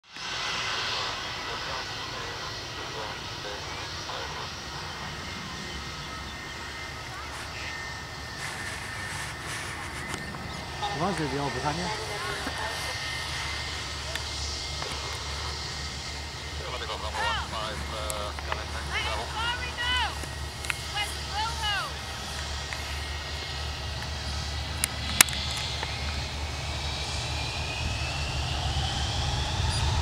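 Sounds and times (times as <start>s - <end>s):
distant jet engines rumbling: 0.0s - 30.0s
high jet engine whine: 0.0s - 30.0s.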